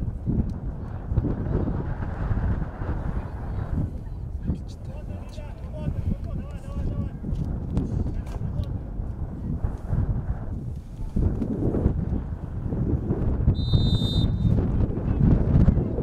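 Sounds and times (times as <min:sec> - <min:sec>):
low rumble on microphone: 0:00.0 - 0:16.0
referee's whistle blast: 0:13.6 - 0:14.6.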